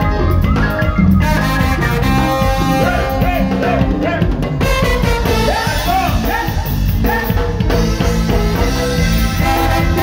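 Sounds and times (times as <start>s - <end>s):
brass band playing dance music: 0.0s - 10.0s
trombone slides: 1.2s - 3.8s, 7.8s - 10.0s.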